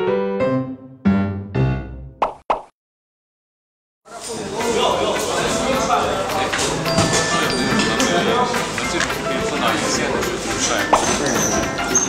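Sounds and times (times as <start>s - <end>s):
piano notes: 0.0s - 2.2s, 5.3s - 12.0s
cartoon pop sound effects: 2.2s - 2.7s.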